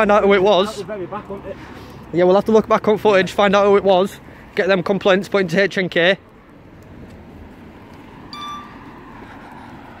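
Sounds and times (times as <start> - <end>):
street traffic noise: 0.0 - 10.0
bright metallic ding: 8.4 - 8.8.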